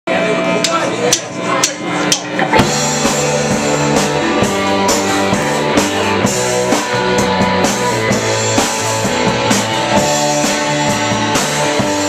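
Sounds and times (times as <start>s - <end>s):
electric guitar chord ringing: 2.1s - 12.0s.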